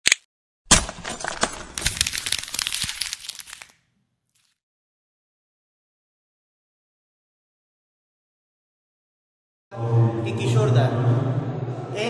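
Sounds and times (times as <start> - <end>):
crackling debris clicks: 0.7 - 3.8.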